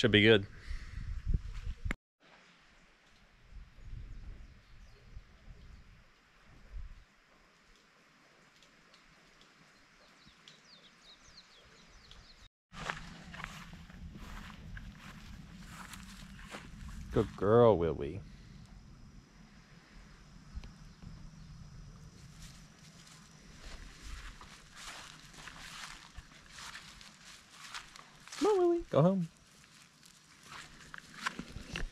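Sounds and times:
footsteps through grass: 0:12.7 - 0:17.6, 0:22.2 - 0:31.9
steady low hum: 0:12.8 - 0:28.4.

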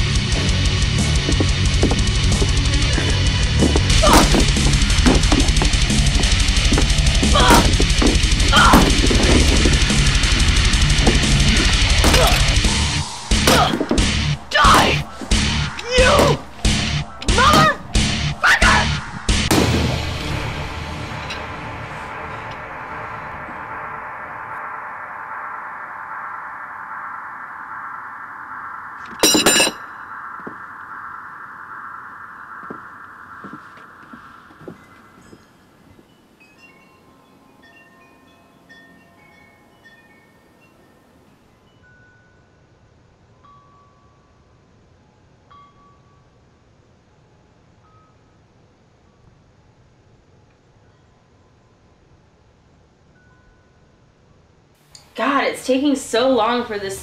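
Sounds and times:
heavy rock music: 0:00.0 - 0:22.6
sharp hits and cries: 0:00.2 - 0:35.5
loud burst: 0:19.0 - 0:23.3
faint chiming tones: 0:21.0 - 0:55.2
held tone: 0:21.1 - 0:36.8.

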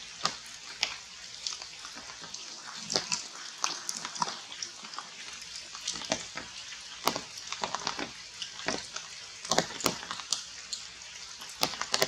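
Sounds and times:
drips on leaves: 0:00.0 - 0:12.0
rain on foliage: 0:00.0 - 0:12.0.

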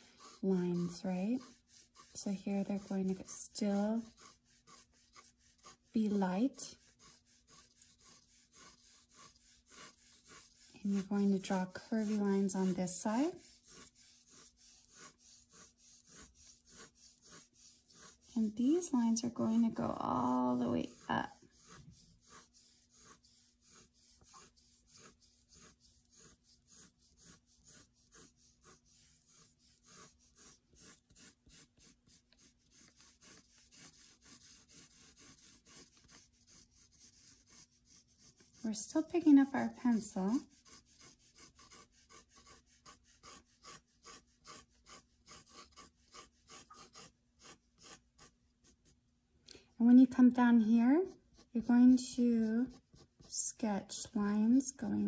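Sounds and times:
pencil scratching on paper: 0:00.0 - 0:49.0, 0:49.8 - 0:55.0.

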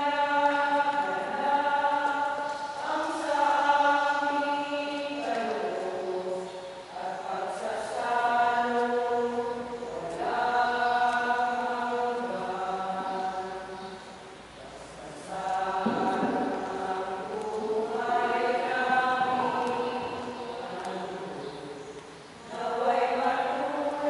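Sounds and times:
voices singing a slow hymn: 0:00.0 - 0:24.0.

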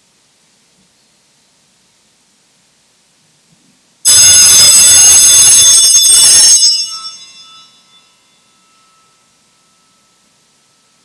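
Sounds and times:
altar bells shaken: 0:05.6 - 0:11.0.

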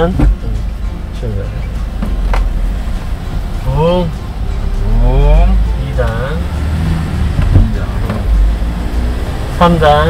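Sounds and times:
engine and road rumble: 0:00.0 - 0:10.0.

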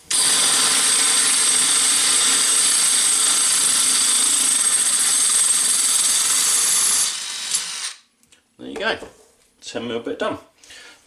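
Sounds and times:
drill bit grinding into glass: 0:00.1 - 0:08.0.

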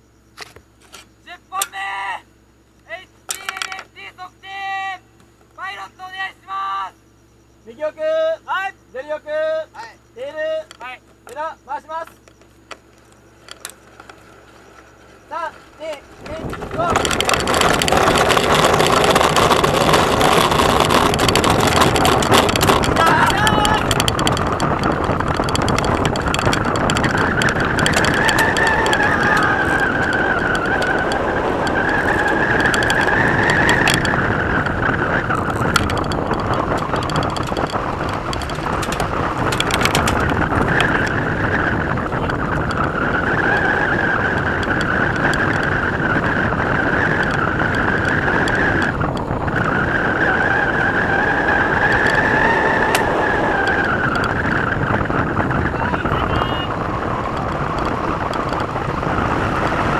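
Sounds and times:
high wavering whine: 0:01.3 - 0:59.9
sharp clicks: 0:02.8 - 0:04.0, 0:10.5 - 0:59.9
wind rush and airframe noise: 0:09.4 - 0:59.9.

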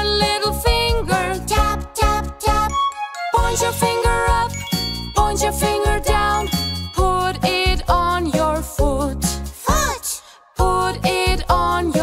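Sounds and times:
person singing nursery rhyme: 0:00.0 - 0:02.7, 0:03.3 - 0:12.0
bouncy backing music: 0:00.0 - 0:12.0.

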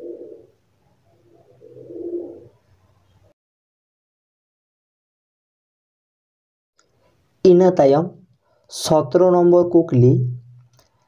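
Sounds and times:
bird cooing: 0:00.0 - 0:02.7.

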